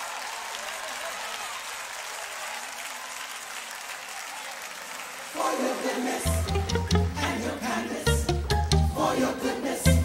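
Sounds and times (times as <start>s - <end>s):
crowd applauding: 0.0s - 7.8s.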